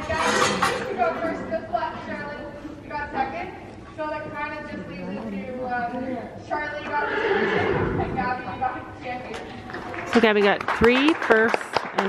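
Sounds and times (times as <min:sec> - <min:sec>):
person talking: 0:04.7 - 0:06.0
horse whinnying: 0:06.8 - 0:08.2.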